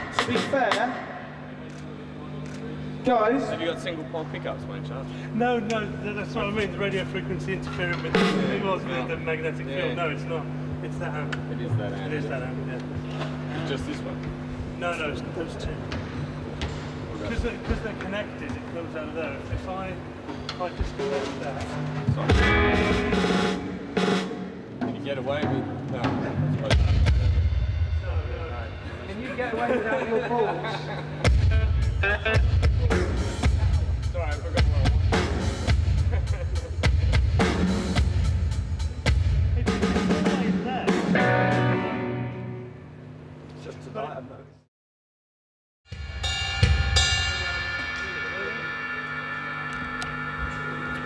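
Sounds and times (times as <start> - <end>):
steady low hum: 0.0 - 44.7
heavy low drum hit: 22.1 - 29.6, 31.2 - 41.8
cymbal crashes: 45.9 - 51.0
sharp hit: 46.4 - 51.0.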